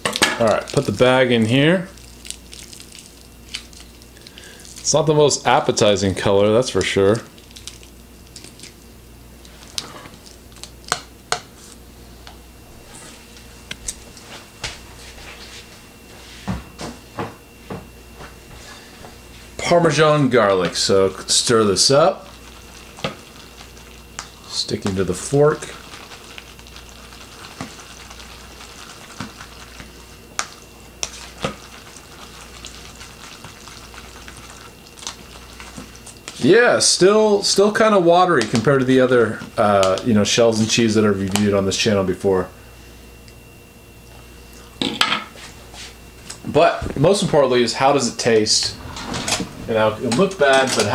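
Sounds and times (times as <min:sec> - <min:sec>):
fork stirring pasta: 0:25.6 - 0:36.4.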